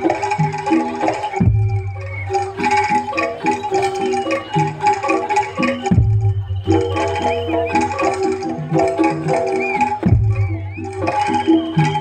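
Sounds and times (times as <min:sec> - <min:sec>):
gamelan metallophones playing: 0:00.0 - 0:12.0.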